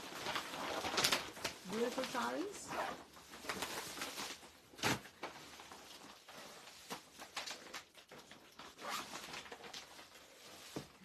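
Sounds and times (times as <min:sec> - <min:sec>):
plastic packaging crinkling: 0:00.0 - 0:11.0.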